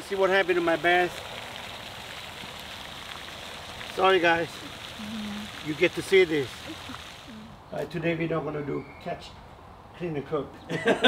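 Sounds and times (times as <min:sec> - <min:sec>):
fountains spraying water: 0:00.0 - 0:07.8.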